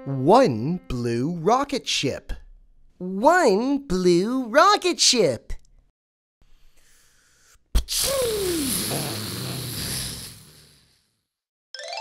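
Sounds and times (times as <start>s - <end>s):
faint hiss: 7.9s - 11.0s.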